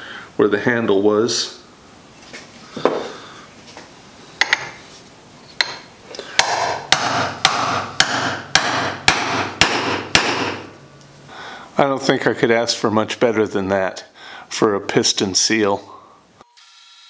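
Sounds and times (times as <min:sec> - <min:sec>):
hammer striking a chisel: 0:05.6 - 0:10.7.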